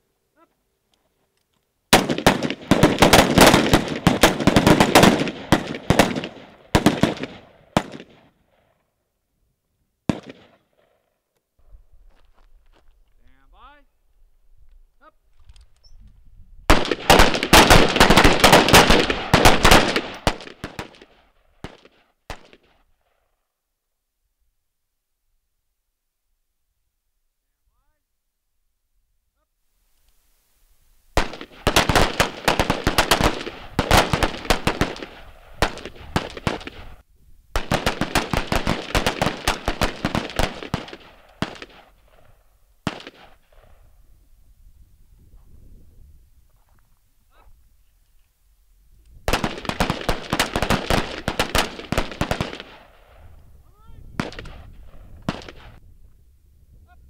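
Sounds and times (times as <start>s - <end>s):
rifle shot: 1.9s - 8.3s, 10.1s - 11.0s, 16.7s - 22.8s, 31.2s - 37.0s, 37.6s - 43.8s, 49.3s - 53.3s, 54.1s - 55.8s.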